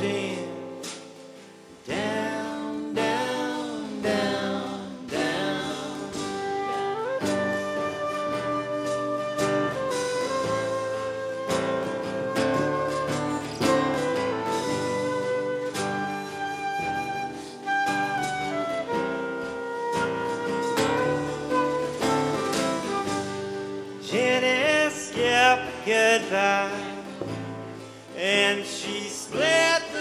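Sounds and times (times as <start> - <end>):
person singing: 0.0 - 1.2, 1.9 - 8.8, 22.6 - 27.4, 28.1 - 30.0
drums: 0.0 - 30.0
strummed acoustic guitar: 0.0 - 30.0
double bass: 1.9 - 16.8
flute melody: 4.1 - 25.8.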